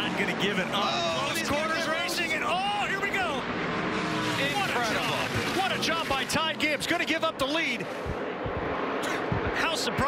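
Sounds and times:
race car engines passing: 0:00.0 - 0:10.0
commentator exclaiming: 0:00.6 - 0:03.4.

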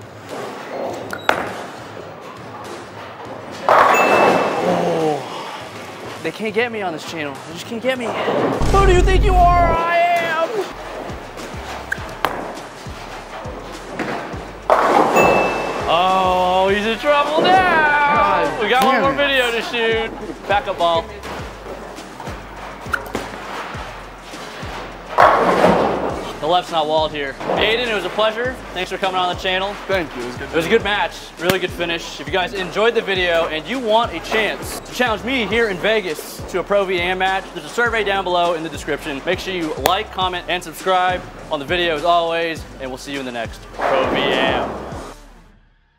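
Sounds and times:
bowling pins clattering: 0:03.5 - 0:04.7, 0:25.1 - 0:26.2
background music with beat: 0:10.7 - 0:17.2, 0:18.0 - 0:43.8
man exclaiming: 0:17.4 - 0:19.7
bowling ball rolling: 0:25.1 - 0:26.2.

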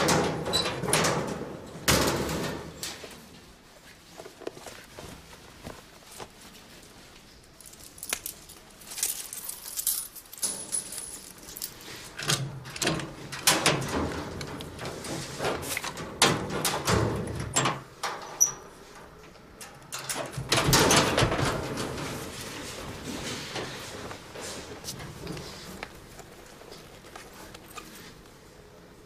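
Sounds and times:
keys and padlock rattling: 0:07.6 - 0:13.8.

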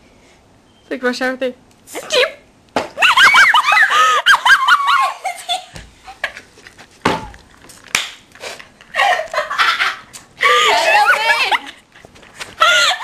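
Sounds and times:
girls laughing: 0:03.0 - 0:06.5, 0:08.9 - 0:13.0.

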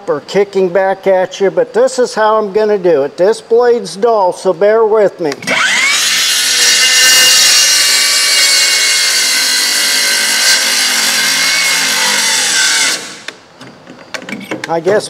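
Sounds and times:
circular saw cutting wood: 0:05.5 - 0:13.4.

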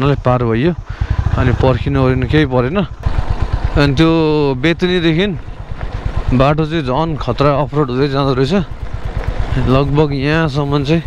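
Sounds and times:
man talking loudly: 0:00.0 - 0:03.0, 0:03.8 - 0:05.4, 0:06.3 - 0:08.7, 0:09.5 - 0:11.0
motorcycle engine running: 0:00.0 - 0:11.0.

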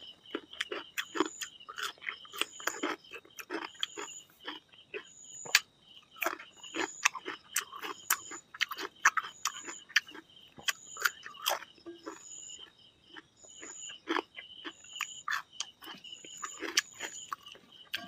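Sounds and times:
chewing and lip-smacking: 0:00.0 - 0:18.0.

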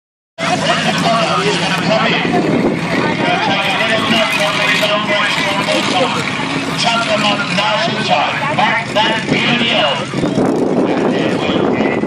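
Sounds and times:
truck engine running: 0:00.4 - 0:12.0
voices: 0:00.4 - 0:12.0.

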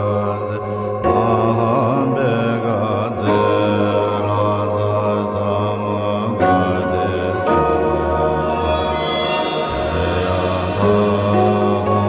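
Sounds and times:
chanted mantra singing: 0:00.0 - 0:07.9, 0:08.5 - 0:12.0
low drone: 0:08.4 - 0:12.0.

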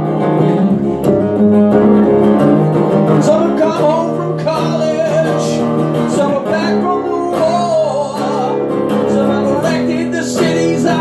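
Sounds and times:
acoustic guitar strummed: 0:00.0 - 0:11.0.

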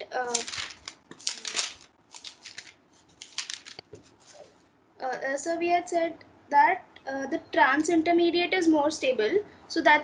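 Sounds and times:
scratchy rustling: 0:00.2 - 0:04.6.

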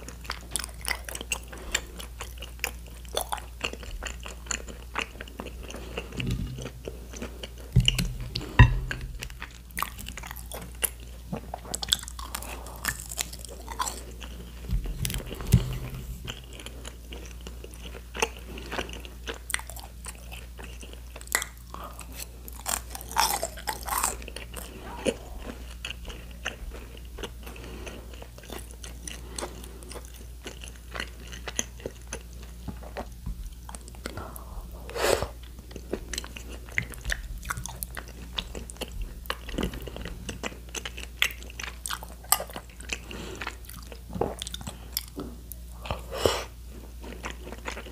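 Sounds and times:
chewing crispy fried food: 0:00.0 - 0:47.9.

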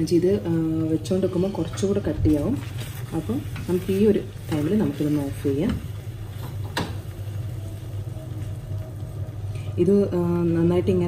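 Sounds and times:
steady low hum: 0:00.0 - 0:11.0
spatula working jam in pan: 0:00.2 - 0:09.6.

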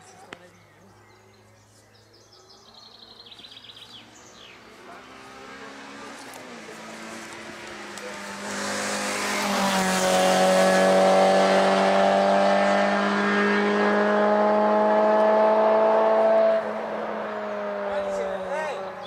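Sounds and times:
race car engine at high revs: 0:03.9 - 0:19.0.

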